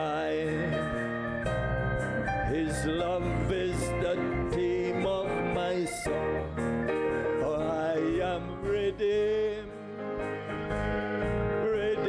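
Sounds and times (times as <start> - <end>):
man singing a hymn: 0.0 - 1.1, 2.4 - 6.7, 7.3 - 9.8, 11.5 - 12.0
instrumental accompaniment: 0.0 - 12.0.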